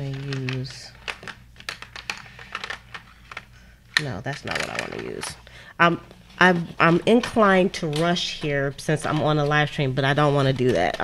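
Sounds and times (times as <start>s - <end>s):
coloured pencils clicking: 0.0s - 5.4s, 6.3s - 11.0s.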